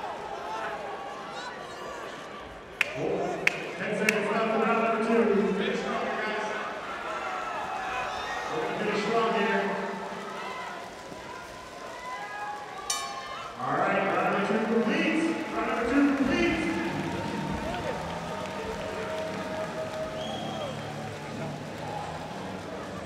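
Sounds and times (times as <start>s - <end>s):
crowd chatter: 0.0s - 23.0s
crowd cheering and shouting: 0.0s - 23.0s
boxing bell ringing: 12.9s - 13.6s.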